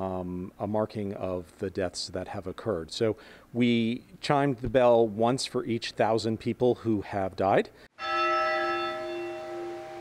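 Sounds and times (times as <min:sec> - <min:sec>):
church bell ringing: 0:08.0 - 0:10.0.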